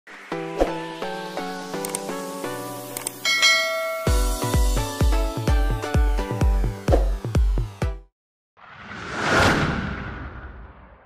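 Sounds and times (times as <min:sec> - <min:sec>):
light background music: 0:00.2 - 0:08.0
bright bell ding: 0:03.2 - 0:04.4.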